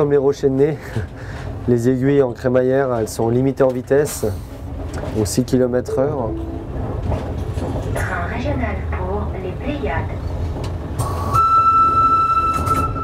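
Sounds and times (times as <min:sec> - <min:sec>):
railcar running rumble: 0:00.0 - 0:13.0.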